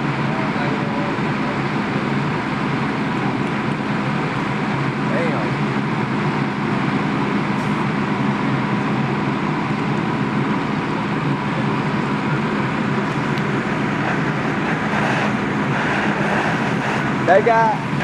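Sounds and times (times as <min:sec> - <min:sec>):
fire engine running: 0:00.0 - 0:18.0.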